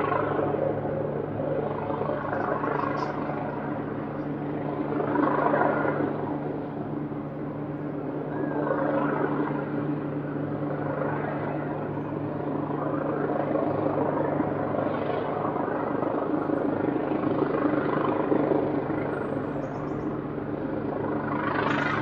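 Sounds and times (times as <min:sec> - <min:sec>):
helicopter rotor hum: 0:00.0 - 0:22.0.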